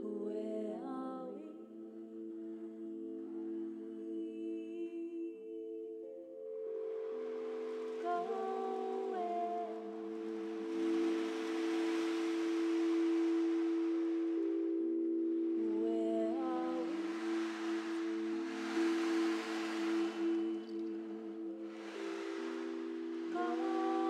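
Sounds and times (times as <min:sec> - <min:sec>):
singing bowls ringing: 0:00.0 - 0:24.0
soft rushing noise: 0:06.7 - 0:24.0
person humming sliding notes: 0:07.9 - 0:24.0.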